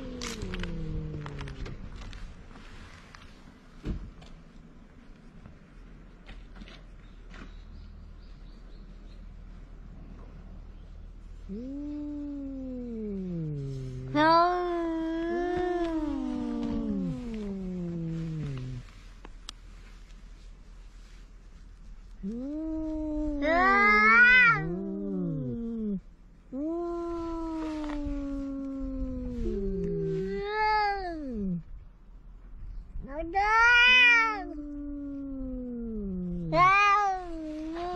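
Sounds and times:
cat yowling: 11.6 - 18.8, 22.3 - 26.0, 33.1 - 37.9.

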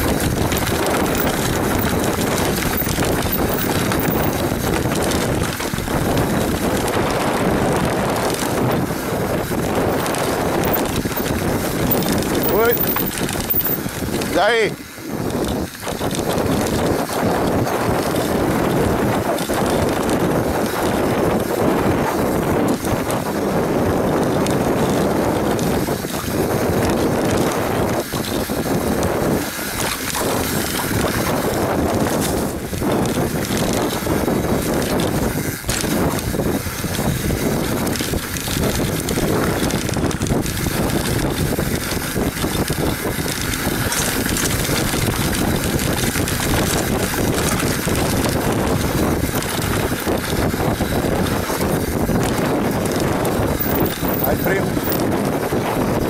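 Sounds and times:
bike knocks and rattles: 0.0 - 56.0
bike tyres rumbling on dirt: 0.0 - 56.0
wind buffeting microphone: 0.0 - 56.0.

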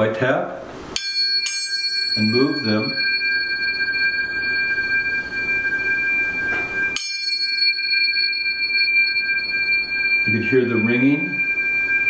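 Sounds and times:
tuning forks ringing: 0.9 - 12.0.

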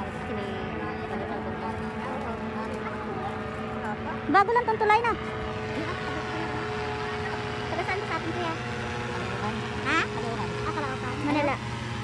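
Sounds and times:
faint voices: 0.0 - 12.0
steady engine drone: 0.0 - 12.0.

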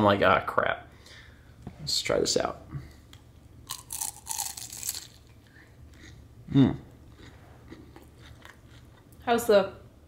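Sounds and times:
crunching bites of spring roll: 3.7 - 5.3.

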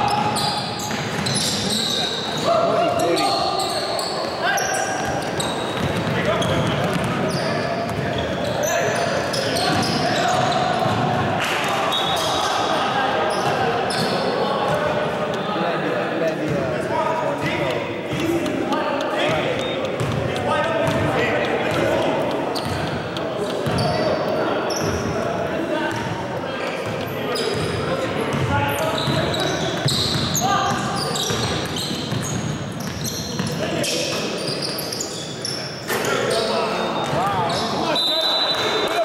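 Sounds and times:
players calling out: 0.0 - 39.0.

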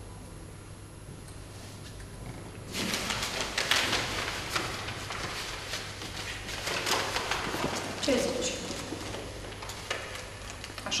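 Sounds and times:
newspaper pages rustling: 2.7 - 11.0.

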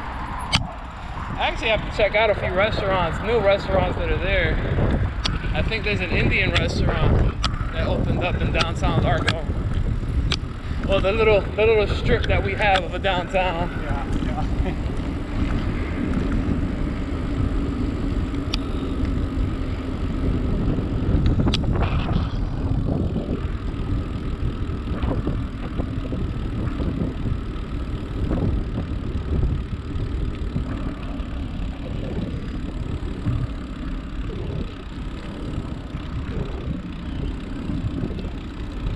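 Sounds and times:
tyres rolling on asphalt: 0.0 - 38.9
wind buffeting microphone: 0.0 - 38.9
sharp clicks: 7.3 - 7.7, 8.4 - 10.5.

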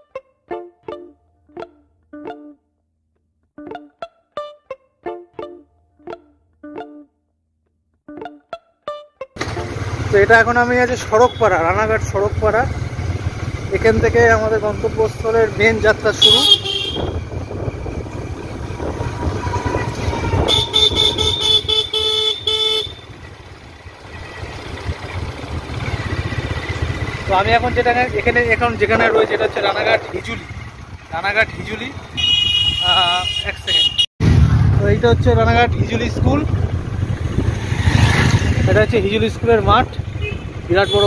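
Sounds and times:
vehicle engine and road rumble: 9.4 - 41.0
man talking: 10.1 - 12.8, 13.6 - 16.6, 27.2 - 32.0, 32.8 - 34.0, 34.8 - 36.6, 38.6 - 40.0, 40.7 - 41.0
vehicle horn short honks: 16.2 - 17.2, 18.8 - 23.2, 32.1 - 34.1, 40.1 - 41.0
wind buffeting microphone: 16.7 - 21.8, 34.7 - 38.7.

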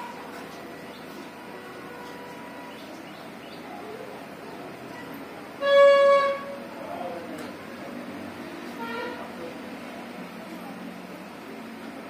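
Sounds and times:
background murmur: 0.0 - 12.0
horn note: 5.6 - 6.6.

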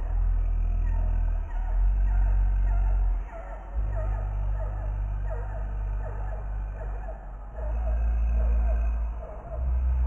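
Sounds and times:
deep drone: 0.0 - 10.0.

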